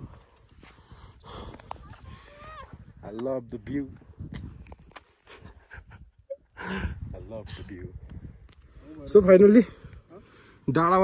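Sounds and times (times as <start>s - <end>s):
person breathing hard: 0.0s - 1.8s
wind rumbling on microphone: 0.0s - 10.1s.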